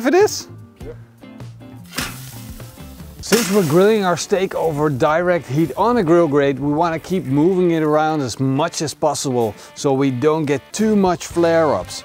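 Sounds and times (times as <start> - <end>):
background music: 0.0 - 12.0
steak sizzling on grill: 1.7 - 8.0.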